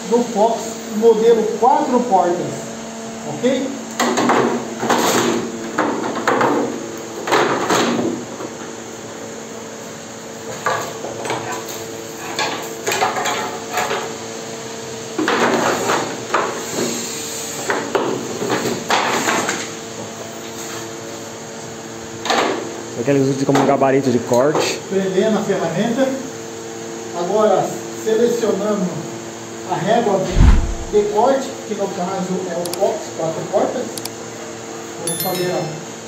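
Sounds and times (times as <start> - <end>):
steady low hum: 30.2 - 31.2.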